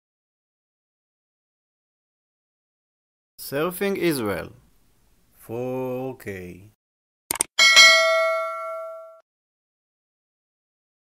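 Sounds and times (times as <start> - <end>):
mouse-style clicks: 7.3 - 7.5
notification bell chime: 7.6 - 9.2.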